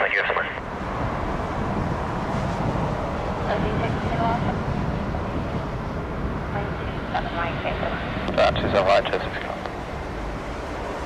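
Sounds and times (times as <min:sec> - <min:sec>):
radio voices: 0:00.0 - 0:00.6, 0:06.6 - 0:09.7
aircraft rumble: 0:00.0 - 0:11.0.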